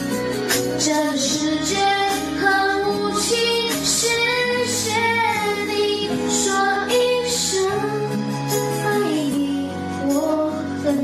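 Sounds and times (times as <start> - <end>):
instrumental backing: 0.0 - 11.0.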